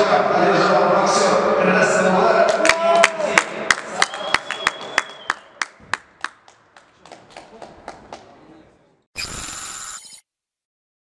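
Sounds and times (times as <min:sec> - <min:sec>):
hand clapping: 0:02.5 - 0:08.3
high steady ringing tone: 0:09.2 - 0:10.2
hissy electronic burst: 0:09.2 - 0:10.2.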